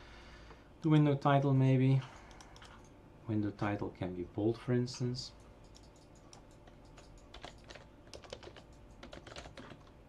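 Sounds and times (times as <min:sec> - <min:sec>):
computer keyboard typing: 0:02.1 - 0:02.9, 0:05.6 - 0:10.0.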